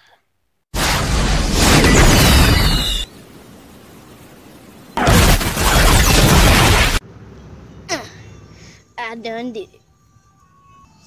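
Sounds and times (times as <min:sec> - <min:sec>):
loud explosion blast: 0:00.8 - 0:03.1, 0:05.0 - 0:07.0.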